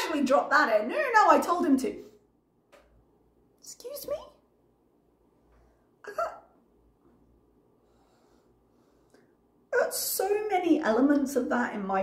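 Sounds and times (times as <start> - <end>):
woman speaking: 0.0 - 2.2, 3.6 - 4.5, 9.7 - 12.0.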